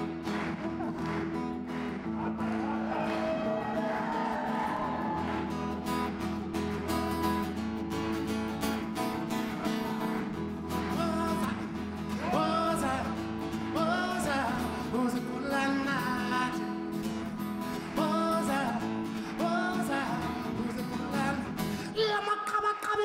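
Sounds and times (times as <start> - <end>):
acoustic guitar: 0.0 - 23.0
man singing: 10.8 - 23.0.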